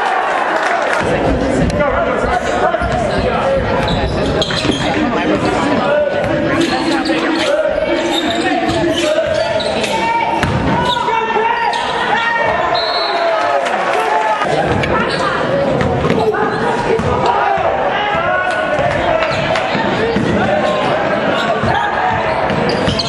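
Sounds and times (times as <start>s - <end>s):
voices of players and spectators: 0.0s - 23.0s.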